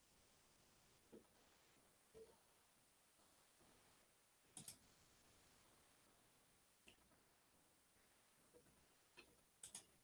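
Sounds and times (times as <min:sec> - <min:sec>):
computer mouse clicks: 0:04.6 - 0:04.8, 0:09.2 - 0:10.0.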